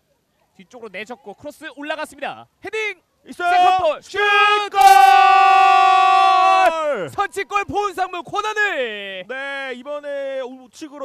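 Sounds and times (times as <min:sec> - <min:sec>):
commentator shouting goal: 0:03.3 - 0:09.0.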